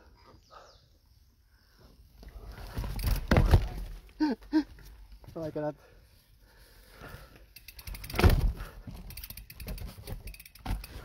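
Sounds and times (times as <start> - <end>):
bike tyres on rough dirt trail: 1.6 - 11.0
camera rattling: 7.6 - 11.0.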